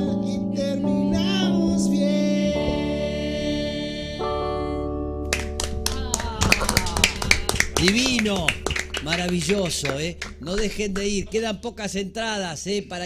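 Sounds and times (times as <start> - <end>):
keyboard chords: 0.0 - 11.8
audience clapping: 5.3 - 11.4.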